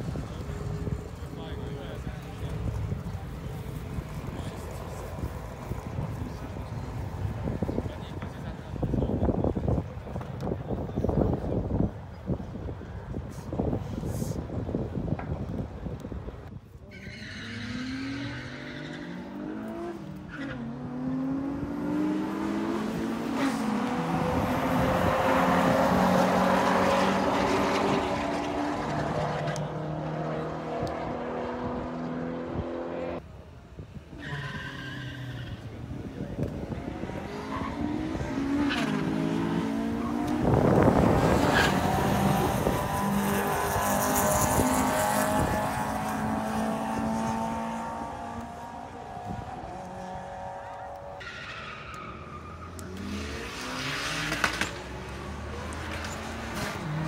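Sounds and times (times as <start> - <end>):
car engines revving and accelerating: 0.0 - 57.0.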